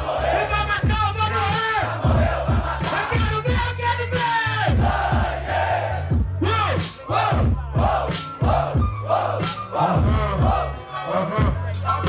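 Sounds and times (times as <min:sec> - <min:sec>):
crowd noise: 0:00.0 - 0:12.0
hip-hop beat: 0:00.0 - 0:12.0
vocal-like melodic figure: 0:08.9 - 0:12.0.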